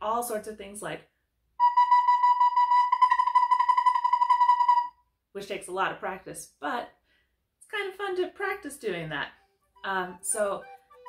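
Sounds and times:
recorder rapid repeated notes: 0:01.6 - 0:05.0.

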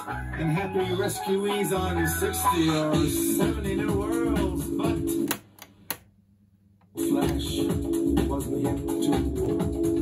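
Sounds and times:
music through amplifier: 0:00.0 - 0:05.4, 0:07.0 - 0:10.0.

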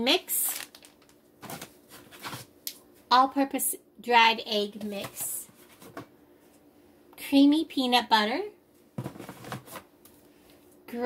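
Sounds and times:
groceries rustling in box: 0:00.4 - 0:02.5
plastic jar set down: 0:09.0 - 0:09.8.

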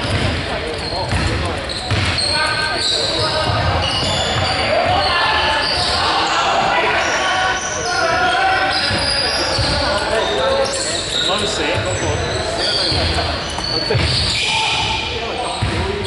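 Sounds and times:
players calling out: 0:00.0 - 0:16.0
basketball bouncing on hardwood: 0:01.1 - 0:02.2.

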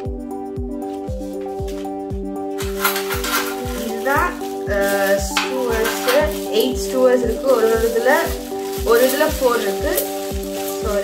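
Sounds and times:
background music with steady beat: 0:00.0 - 0:11.0
plastic wrap crinkling: 0:00.8 - 0:11.0.

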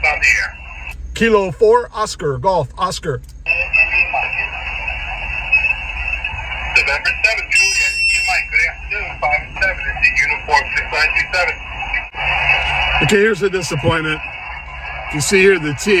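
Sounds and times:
radio band noise hiss: 0:00.0 - 0:01.3, 0:03.4 - 0:16.0
faint garbled radio voices: 0:00.0 - 0:01.5, 0:03.2 - 0:16.0.

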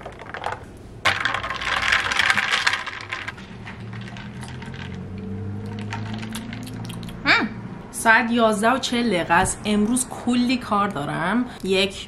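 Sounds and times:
ice cubes clinking in plastic cup: 0:00.0 - 0:05.0, 0:05.7 - 0:06.8.

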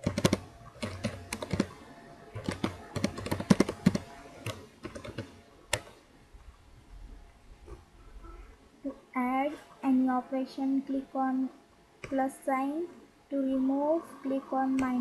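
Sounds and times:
computer keyboard typing: 0:00.0 - 0:01.8, 0:02.4 - 0:06.0.

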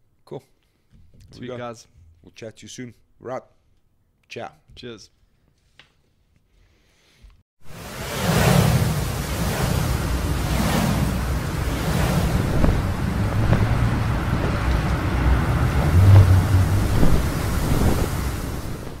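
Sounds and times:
low rumble: 0:07.7 - 0:19.0
rushing wind whooshes: 0:07.7 - 0:19.0.

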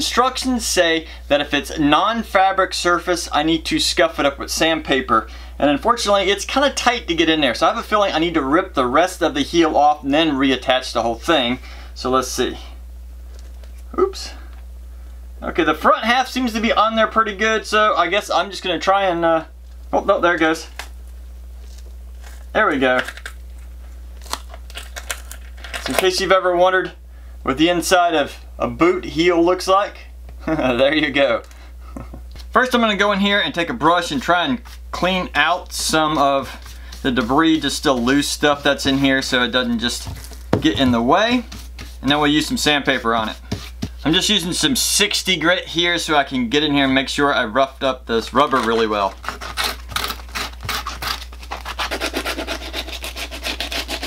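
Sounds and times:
steady low hum: 0:00.0 - 0:54.0
sandpaper scrubbing rubber: 0:35.4 - 0:40.1, 0:48.7 - 0:54.0.

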